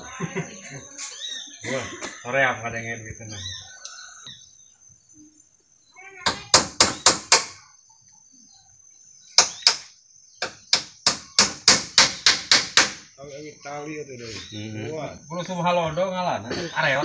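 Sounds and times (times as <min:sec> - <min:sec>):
hammer striking bamboo poles: 0:06.3 - 0:07.6, 0:09.4 - 0:13.1.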